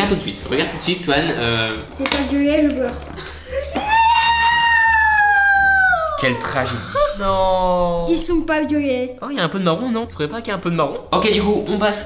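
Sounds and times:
boy's high-pitched cry: 3.6 - 7.2.

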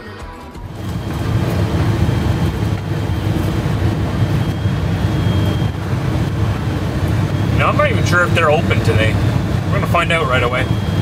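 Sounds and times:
diesel engine rumble: 0.6 - 11.0
road noise: 0.6 - 11.0.

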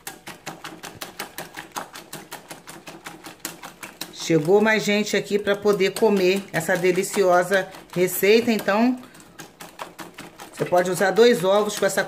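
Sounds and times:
whisk clicking in glass bowl: 0.0 - 12.0.

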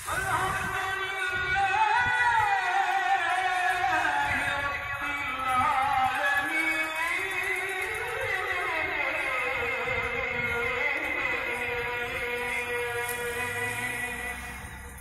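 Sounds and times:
chant over mosque loudspeakers: 0.0 - 15.0.

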